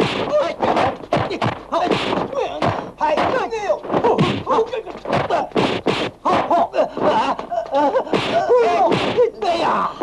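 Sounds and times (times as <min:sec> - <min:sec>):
punch impacts: 0:00.0 - 0:07.3, 0:08.0 - 0:09.3
men shouting and grunting: 0:06.2 - 0:10.0.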